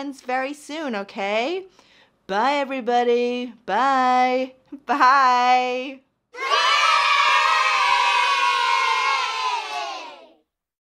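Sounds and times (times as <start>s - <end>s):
children cheering: 6.4s - 10.4s.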